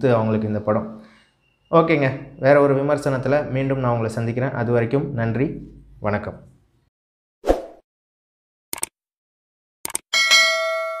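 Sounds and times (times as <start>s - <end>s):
bell chime: 10.1s - 11.0s.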